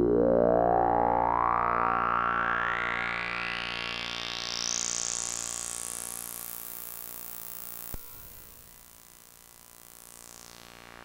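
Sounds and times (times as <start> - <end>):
synthesizer filter sweep: 0.0 - 5.2.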